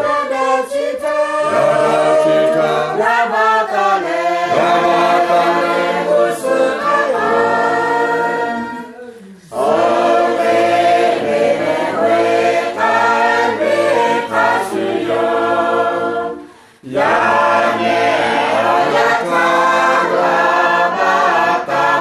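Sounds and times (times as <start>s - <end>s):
choir singing in harmony: 0.0s - 22.0s.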